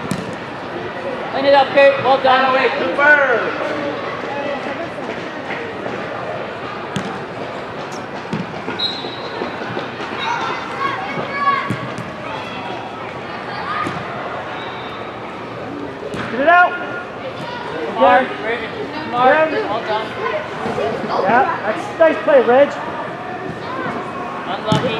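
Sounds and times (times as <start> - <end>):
crowd noise: 0.0 - 24.9
distant voices of players: 0.0 - 24.9.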